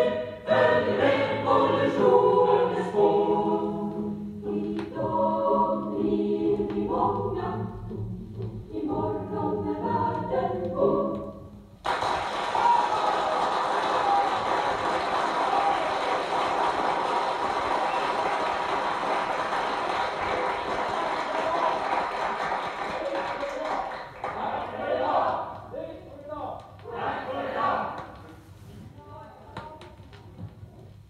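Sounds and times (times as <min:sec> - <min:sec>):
choir singing: 0:00.0 - 0:11.6, 0:24.2 - 0:25.5, 0:26.8 - 0:28.1.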